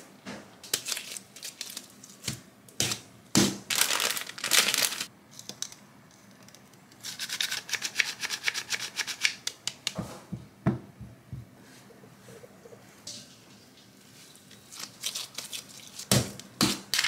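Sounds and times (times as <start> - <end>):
rustling or crinkling: 3.7 - 5.1, 14.1 - 17.0.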